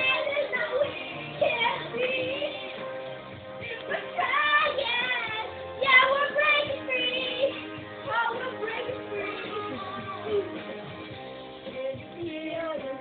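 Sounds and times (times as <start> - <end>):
backing track: 0.0 - 13.0
girl singing pop song: 0.0 - 13.0.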